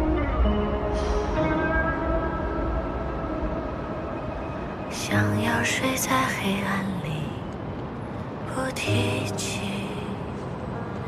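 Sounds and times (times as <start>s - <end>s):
soft instrumental music: 0.0s - 6.1s.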